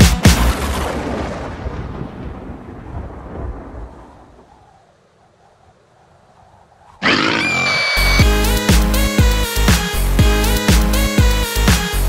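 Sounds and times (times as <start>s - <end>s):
thunder rumbling: 0.4s - 5.0s.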